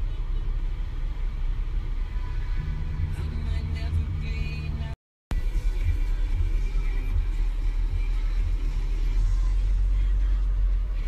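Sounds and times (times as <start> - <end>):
car engine and road noise inside cabin: 0.0 - 11.0.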